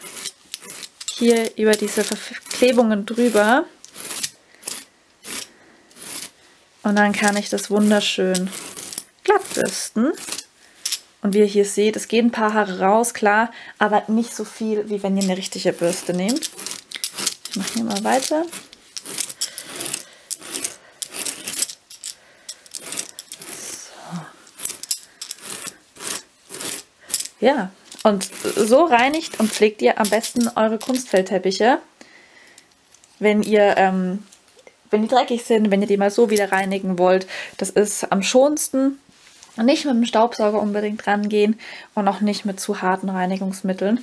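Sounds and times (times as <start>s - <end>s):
brush scratching through fur rug: 0.0s - 0.9s, 1.9s - 6.4s, 7.2s - 10.4s, 15.2s - 21.8s, 22.7s - 26.9s, 27.9s - 31.0s.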